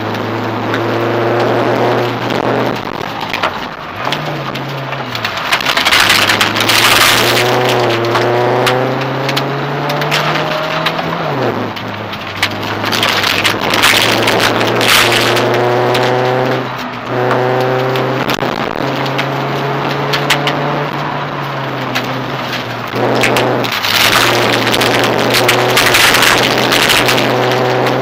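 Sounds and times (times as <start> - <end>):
rally car engine revving: 0.0 - 28.0
gravel hissing under tyres: 1.4 - 28.0
stones clattering against car body: 3.0 - 11.2, 12.0 - 20.7, 21.8 - 28.0.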